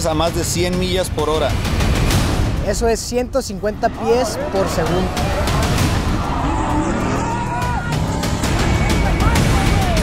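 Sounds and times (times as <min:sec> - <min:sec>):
background music: 0:00.0 - 0:10.0
spectators shouting: 0:03.9 - 0:10.0.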